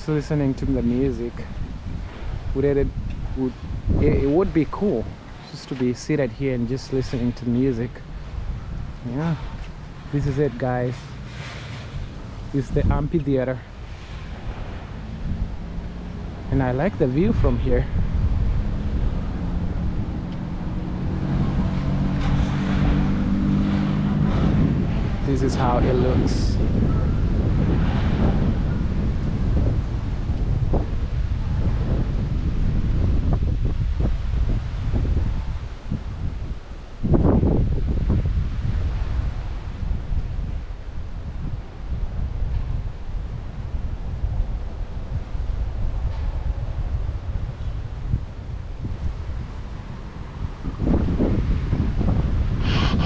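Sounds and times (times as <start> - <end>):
wind buffeting microphone: 0.0 - 53.0.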